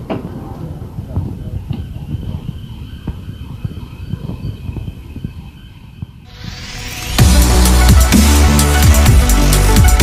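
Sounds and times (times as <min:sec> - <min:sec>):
wind buffeting microphone: 0:00.0 - 0:06.3.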